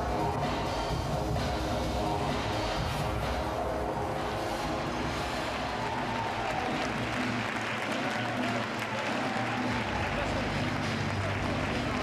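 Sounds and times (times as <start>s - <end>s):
runway show music: 0.0s - 12.0s
audience applauding: 5.3s - 12.0s.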